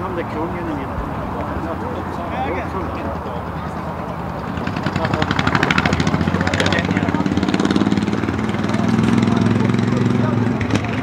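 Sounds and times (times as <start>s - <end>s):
engine pulsing: 0.0s - 11.0s.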